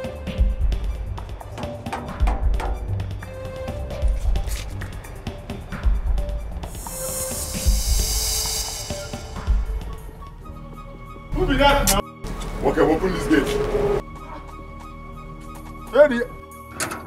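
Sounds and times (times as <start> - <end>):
sustained music notes: 3.3 - 15.9
slow heavy drum beat: 5.8 - 10.4
bright hissing swell: 6.6 - 10.4.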